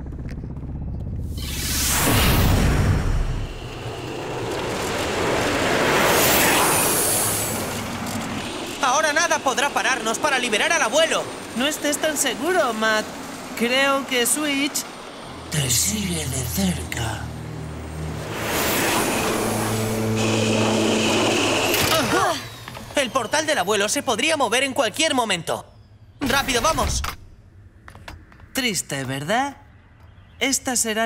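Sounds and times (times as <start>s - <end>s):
rushing whoosh: 1.3s - 8.6s, 17.5s - 21.8s
cartoon whirring trolleys: 3.3s - 15.4s, 18.0s - 25.0s
thin high whine: 14.5s - 24.5s.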